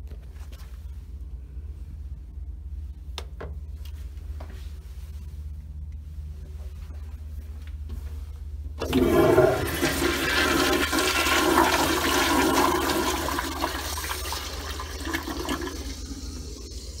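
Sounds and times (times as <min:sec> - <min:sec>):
toilet flushing: 0:08.8 - 0:17.0.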